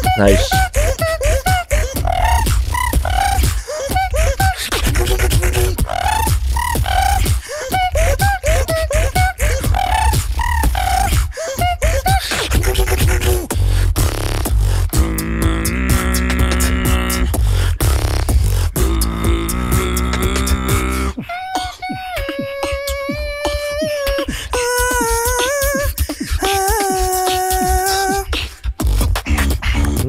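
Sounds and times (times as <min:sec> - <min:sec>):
long held layered vocal tone: 0:00.0 - 0:13.5, 0:14.9 - 0:17.4, 0:18.6 - 0:28.8
beatboxing into microphones: 0:00.0 - 0:30.0
gliding vocal chirps: 0:01.8 - 0:11.3.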